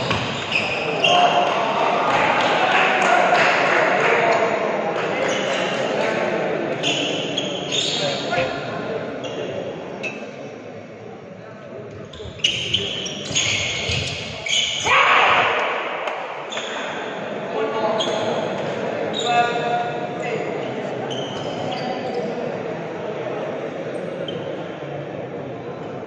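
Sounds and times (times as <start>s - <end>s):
shoes squeaking on court floor: 0.0s - 1.3s, 6.8s - 8.4s, 12.0s - 14.8s, 18.0s - 19.5s, 20.9s - 22.4s.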